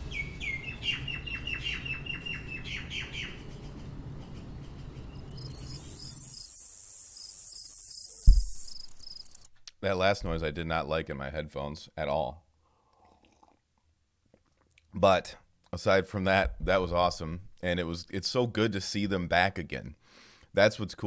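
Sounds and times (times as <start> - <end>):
birds chirping: 0.0 - 9.5
high-pitched hiss with quick ticks: 5.3 - 9.5
low thud: 8.2 - 9.1, 10.2 - 10.5
low steady rumble: 10.1 - 10.6.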